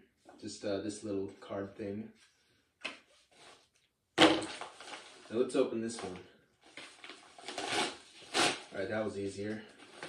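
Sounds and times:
paper envelope rustling: 4.4 - 8.3.

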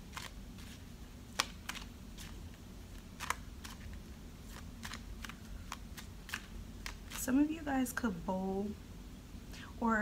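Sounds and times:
low room hum: 0.0 - 10.0
cards clicking and tapping: 0.1 - 7.2.

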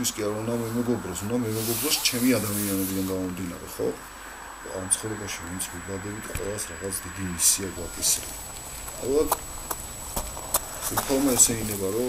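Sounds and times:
footsteps on gravel: 8.0 - 12.0.

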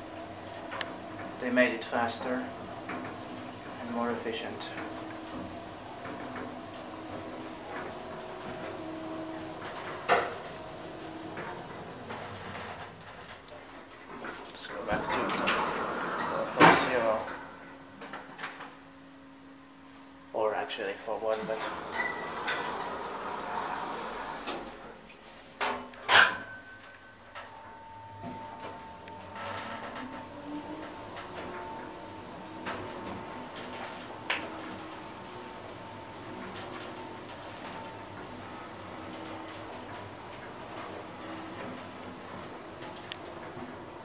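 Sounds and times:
elevator doors sliding shut: 0.0 - 18.7, 21.2 - 25.0, 25.6 - 44.0
elevator whine: 0.0 - 44.0.

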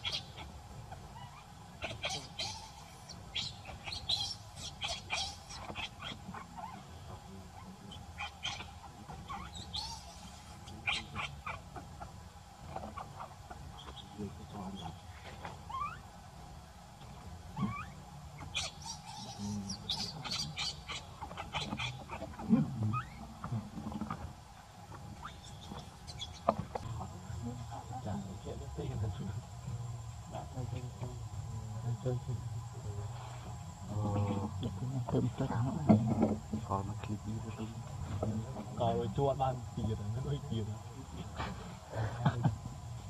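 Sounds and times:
animal squeaks and chirps: 0.0 - 0.4, 1.1 - 6.9, 8.0 - 11.6, 15.7 - 16.1, 17.6 - 22.2, 25.2 - 26.5
faint steady hum: 0.0 - 43.0.

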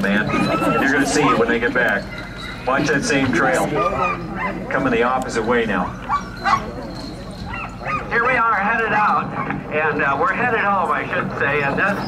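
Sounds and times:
dogs yipping and barking: 0.0 - 9.7.

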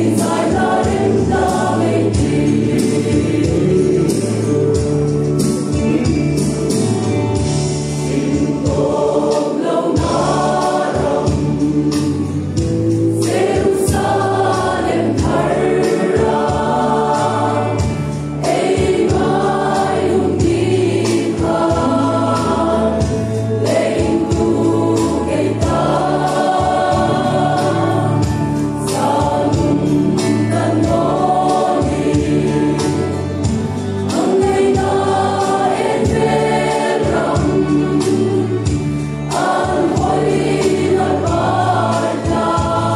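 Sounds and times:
choir singing a gospel hymn: 0.0 - 42.9
instrumental accompaniment with bass: 0.0 - 42.9.

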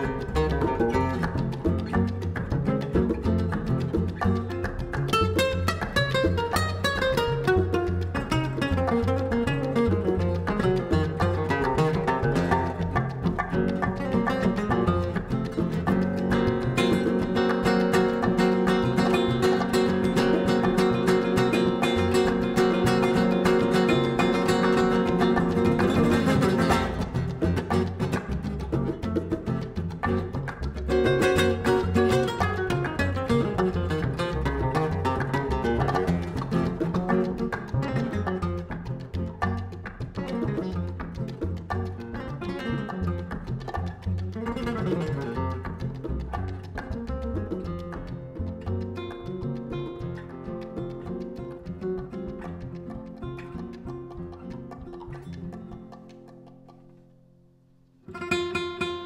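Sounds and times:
hand drums: 0.0 - 56.8
plucked double bass: 0.0 - 57.2
nylon-string acoustic guitar: 0.0 - 59.0.

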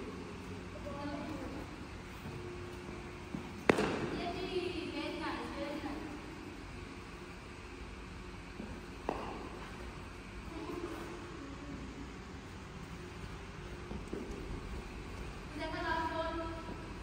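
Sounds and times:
steady low background noise: 0.0 - 17.0.

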